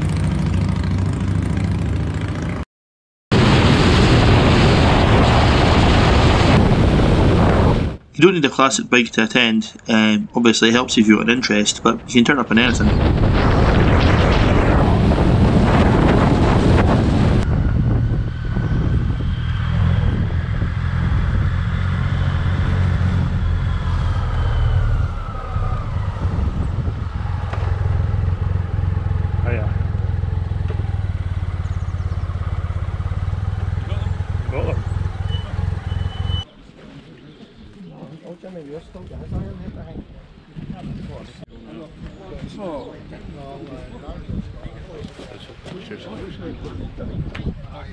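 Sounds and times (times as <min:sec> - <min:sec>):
motorcycle engine running: 0:00.0 - 0:02.6, 0:16.0 - 0:36.4
wind rush on microphone: 0:03.4 - 0:08.0, 0:11.8 - 0:29.1, 0:38.8 - 0:47.9.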